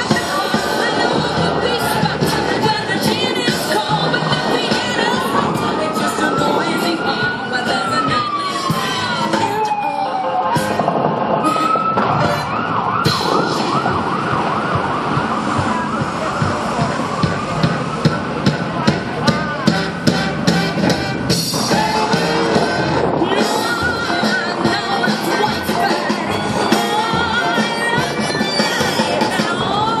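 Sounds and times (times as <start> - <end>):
emergency vehicle siren: 0.0 - 30.0
music: 0.0 - 30.0
sharp bangs: 12.0 - 28.0.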